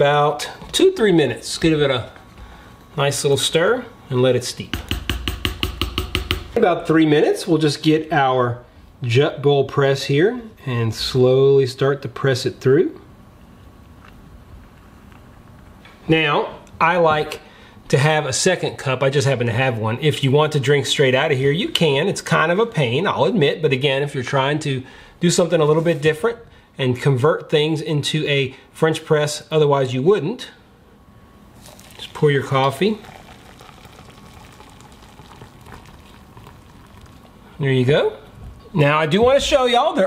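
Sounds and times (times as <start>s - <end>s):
coffee pouring into metal mug: 31.6s - 37.6s.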